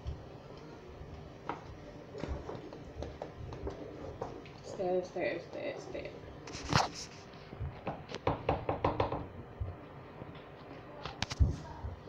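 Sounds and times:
utensil knocking on cooking pot: 7.8 - 9.3.

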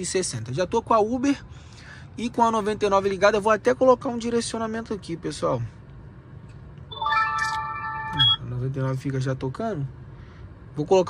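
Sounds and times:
bright electronic chime: 6.9 - 8.4.

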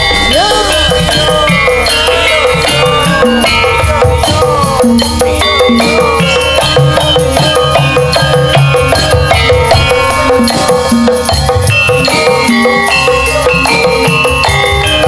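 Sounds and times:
hand drum beats: 0.0 - 15.0
metallophones ringing melody: 0.0 - 15.0.

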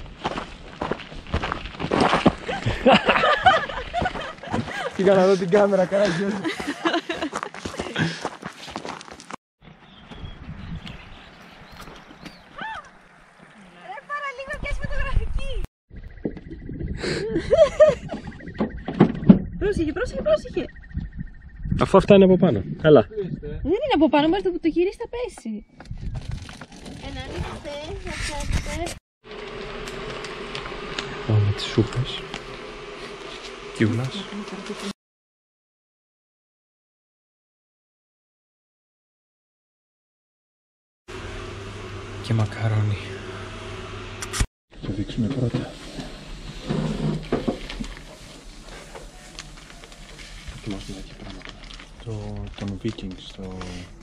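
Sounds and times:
footsteps on gravel: 0.0 - 9.4, 10.1 - 13.1
flies buzzing: 29.3 - 35.0.

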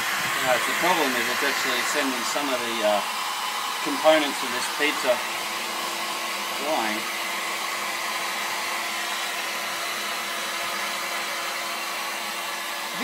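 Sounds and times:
heat gun blowing air: 0.0 - 13.0.

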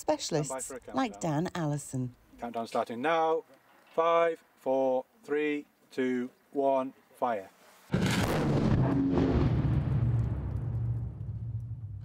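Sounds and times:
explosion blast: 7.9 - 12.0.

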